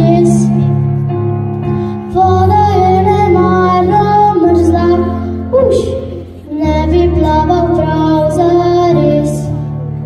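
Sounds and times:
electronic keyboard: 0.0s - 10.0s
girl singing into a microphone: 0.0s - 10.0s.

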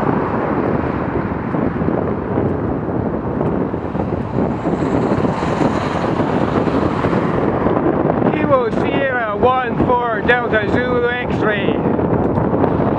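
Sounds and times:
wind buffeting microphone: 0.0s - 12.9s.

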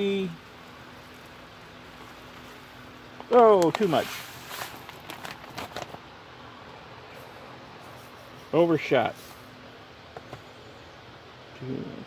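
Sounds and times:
plastic bag rustling: 1.0s - 6.1s.

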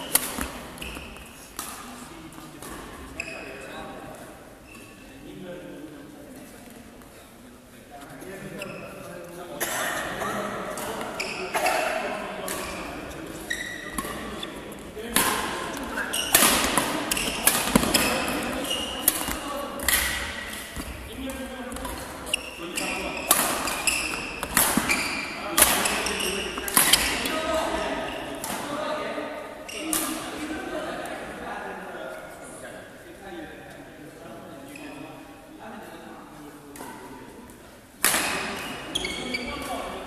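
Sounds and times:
trainers squeaking on court floor: 0.0s - 1.4s, 3.1s - 3.8s, 8.4s - 9.2s, 10.8s - 14.7s, 15.7s - 28.4s, 38.2s - 40.0s
racket striking shuttlecock: 0.1s - 0.9s, 15.1s - 18.4s, 23.3s - 25.0s.

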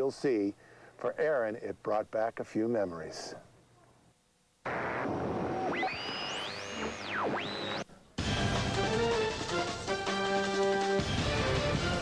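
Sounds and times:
synthesizer sweeps: 4.7s - 9.0s.

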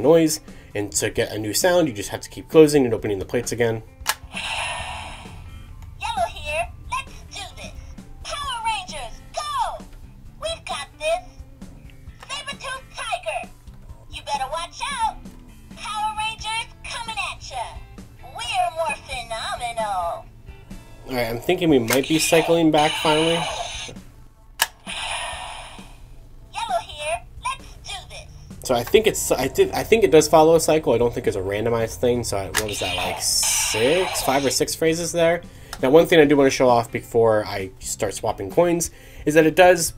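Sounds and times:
sharp plastic click: 4.0s - 4.2s
electronic hissing shimmer: 22.2s - 24.0s, 32.7s - 34.6s.

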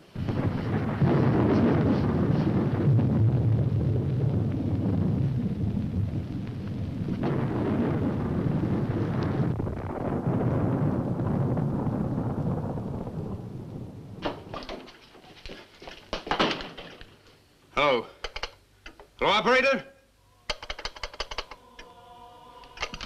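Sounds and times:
deep noisy rumbling roar: 0.0s - 14.2s, 21.5s - 23.0s
sharp knocks and clicks: 18.2s - 19.2s, 20.5s - 21.6s.

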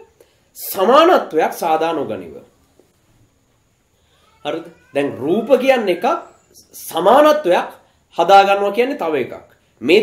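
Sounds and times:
man speaking: 0.6s - 2.5s, 4.4s - 10.0s.

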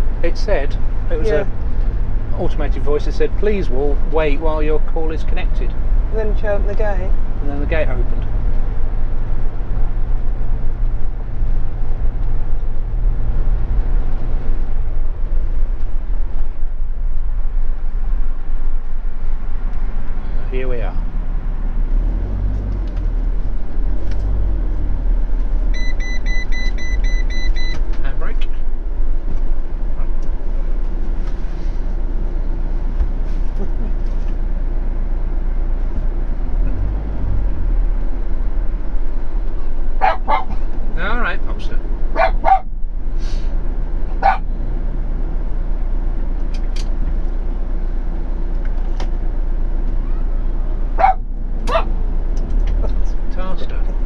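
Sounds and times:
motorhome engine drone: 0.0s - 54.0s
dog barking: 40.0s - 40.6s, 42.2s - 42.7s, 44.2s - 44.5s, 51.0s - 51.9s.

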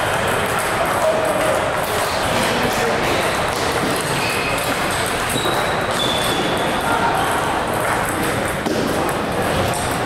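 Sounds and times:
table tennis balls clicking: 0.0s - 10.0s.

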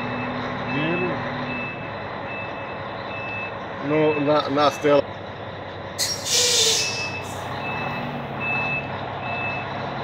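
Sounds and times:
truck reversing alarm beeping: 0.0s - 5.0s, 6.0s - 9.9s
truck engine running: 0.0s - 10.0s.

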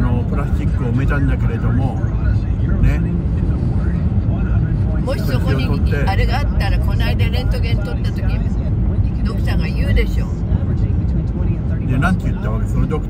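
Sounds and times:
road and engine rumble: 0.0s - 13.0s
voice from car radio: 0.0s - 13.0s.

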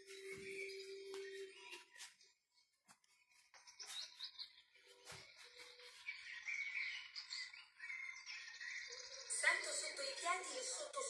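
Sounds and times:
birds chirping and singing: 3.3s - 10.9s.

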